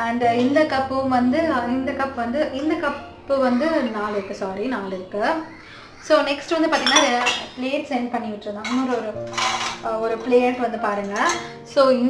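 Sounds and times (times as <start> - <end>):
woman speaking: 0.0 - 12.0
metal plates clinking and scraping: 6.6 - 7.6, 8.6 - 11.6.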